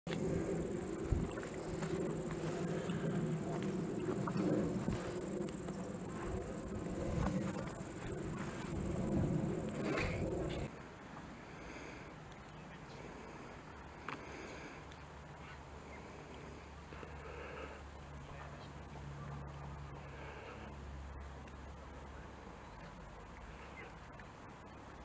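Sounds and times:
insects calling: 0:00.1 - 0:10.7.

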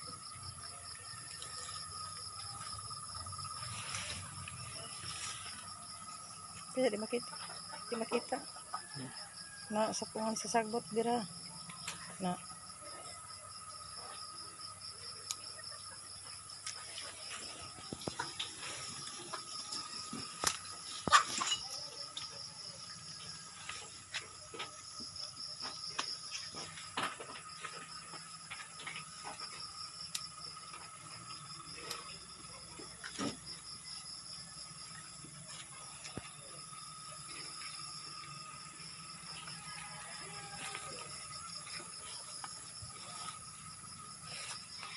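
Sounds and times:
insects trilling: 0:00.0 - 0:44.9
leaves and stems rustling: 0:01.5 - 0:06.7.

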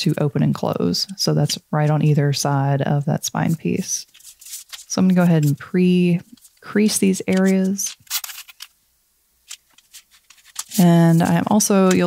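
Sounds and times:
paper rustling: 0:03.6 - 0:08.7, 0:09.4 - 0:12.0.

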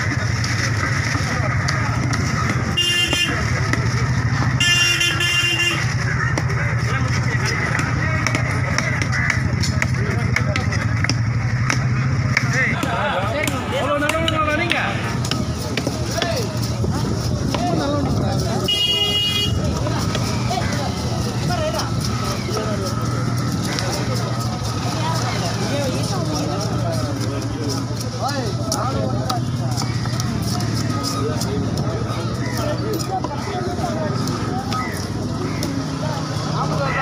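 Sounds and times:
people talking: 0:00.0 - 0:37.0
traffic going by: 0:00.0 - 0:37.0
vehicle horn: 0:02.8 - 0:03.5, 0:04.5 - 0:06.0, 0:18.6 - 0:19.7.

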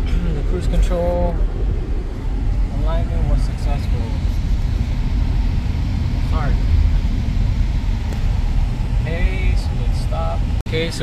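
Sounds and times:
low engine rumble inside car cab: 0:00.0 - 0:11.0
road noise: 0:00.0 - 0:11.0.

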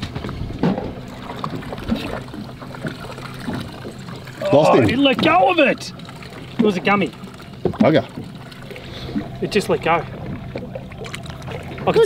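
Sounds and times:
steady low hum: 0:00.0 - 0:12.0
water splashing against boat: 0:00.0 - 0:12.0.

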